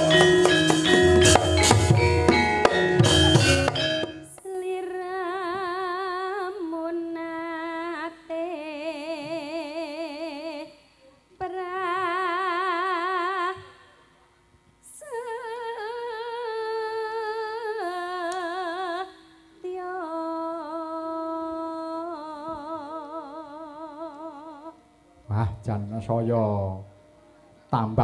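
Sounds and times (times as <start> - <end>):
woman singing through pa: 4.2 - 13.8, 14.8 - 25.1
singer breathing: 19.1 - 19.6.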